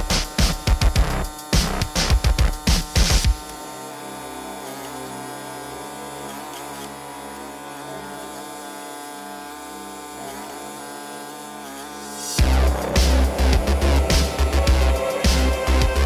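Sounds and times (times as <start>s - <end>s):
small gasoline engine running: 0.0s - 16.0s.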